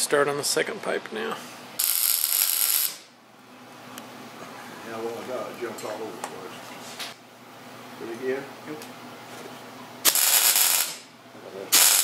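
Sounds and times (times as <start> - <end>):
electric arc welding hiss: 1.8 - 3.1, 10.0 - 11.1, 11.7 - 12.0.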